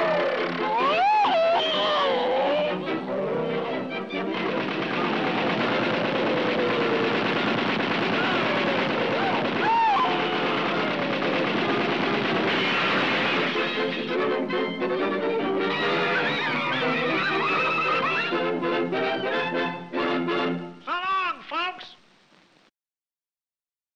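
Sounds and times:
orchestra music: 0:01.7 - 0:07.5, 0:11.6 - 0:20.8
cartoon voices: 0:20.8 - 0:22.0.

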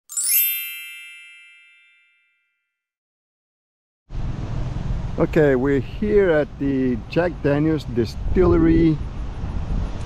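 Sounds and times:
bright chime ding: 0:00.1 - 0:02.4.

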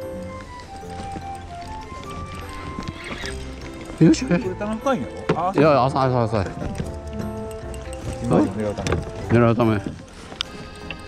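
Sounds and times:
held-note melody: 0:00.0 - 0:11.0.

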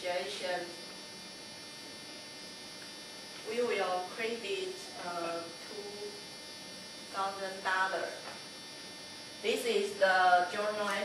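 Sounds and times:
electrical buzz and hum: 0:00.0 - 0:11.0.

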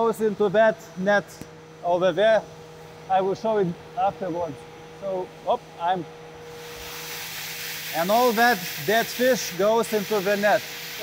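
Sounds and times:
low machinery hum: 0:00.0 - 0:11.0.

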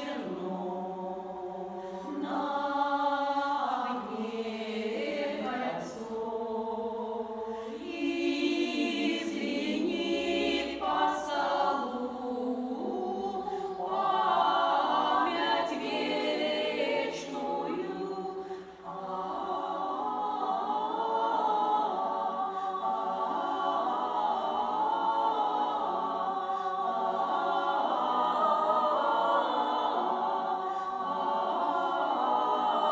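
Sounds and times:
women singing in harmony: 0:00.0 - 0:32.9.

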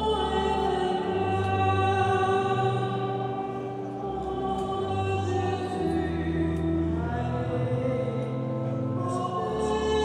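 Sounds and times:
choir singing sacred music: 0:00.0 - 0:10.0.

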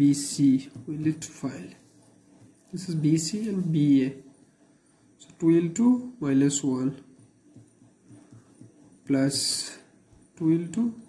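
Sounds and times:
pen writing on paper: 0:00.1 - 0:11.0.

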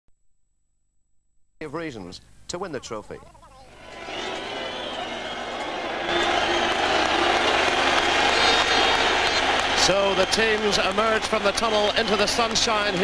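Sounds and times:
football crowd cheering: 0:03.7 - 0:13.0.

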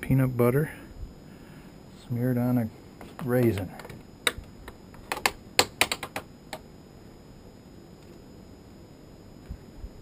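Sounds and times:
sharp plastic clicks and taps: 0:05.0 - 0:06.6.

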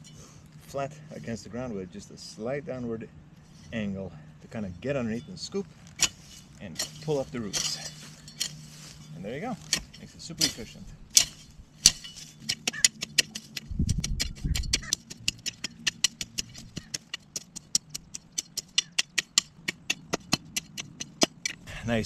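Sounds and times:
hoe chopping through weeds and soil: 0:05.0 - 0:21.6.

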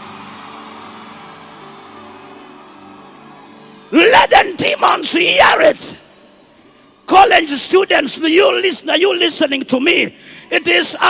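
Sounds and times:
soft sustained chords music: 0:00.0 - 0:07.1
faint hall hum: 0:00.0 - 0:11.0.

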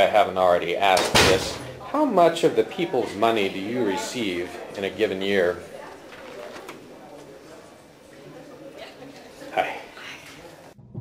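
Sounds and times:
distant murmur of voices: 0:01.2 - 0:10.8.

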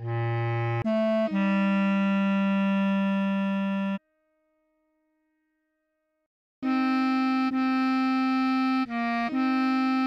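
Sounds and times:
bass clarinet low note: 0:00.0 - 0:04.0.

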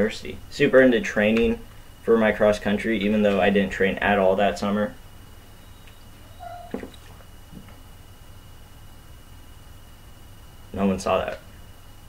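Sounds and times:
low steady hum: 0:00.0 - 0:12.0
plastic bottle squeak: 0:06.3 - 0:07.0.

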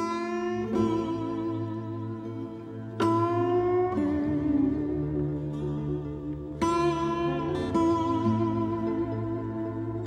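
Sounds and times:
low sustained bass note: 0:00.0 - 0:10.0
slide guitar notes: 0:00.0 - 0:10.0.

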